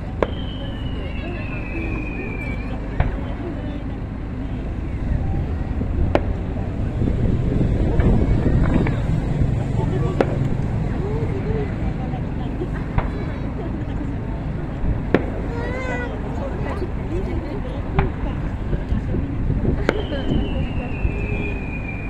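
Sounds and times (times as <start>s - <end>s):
low outdoor rumble: 0.0s - 22.0s
voices: 0.0s - 22.0s.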